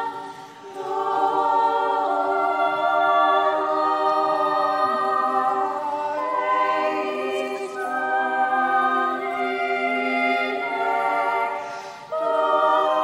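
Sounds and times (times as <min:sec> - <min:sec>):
choir singing a hymn: 0:00.0 - 0:13.0.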